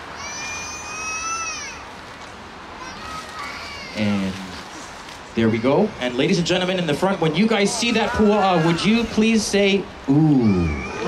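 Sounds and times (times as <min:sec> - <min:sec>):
crowd murmur: 0:00.0 - 0:11.0
high-pitched vocal squeal: 0:10.1 - 0:11.0.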